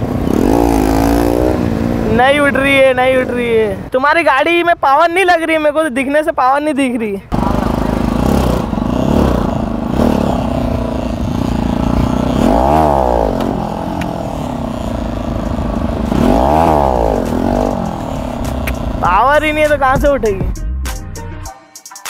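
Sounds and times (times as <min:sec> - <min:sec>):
motorcycle engine revving: 0:00.0 - 0:03.9, 0:07.3 - 0:20.3.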